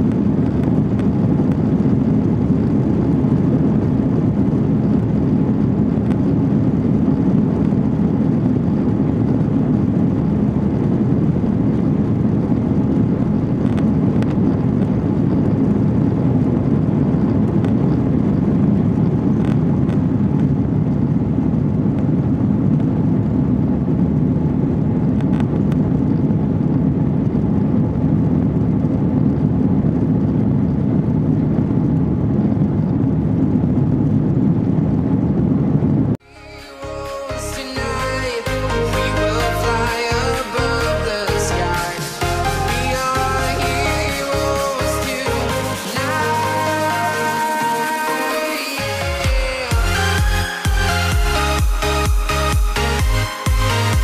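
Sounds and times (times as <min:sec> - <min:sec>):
aircraft engines loud rumble: 0:00.0 - 0:54.0.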